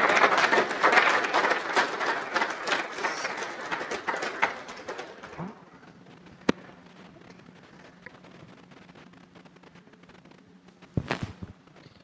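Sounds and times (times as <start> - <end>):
audience applauding: 0.0 - 5.6.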